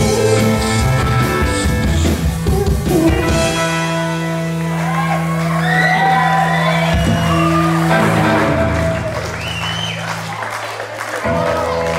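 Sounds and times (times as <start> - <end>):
rock band holding a chord: 0.0 - 9.5
voices shouting and whooping: 4.8 - 9.6.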